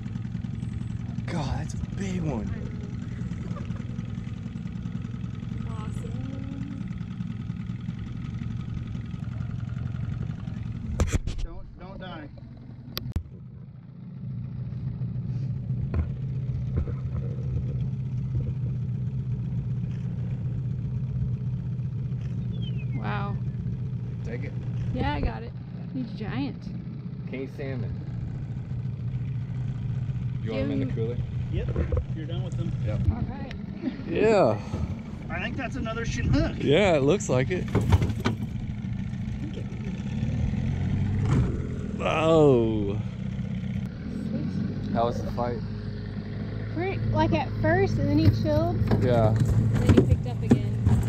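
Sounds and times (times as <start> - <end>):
outboard motor idling: 0.0 - 51.0.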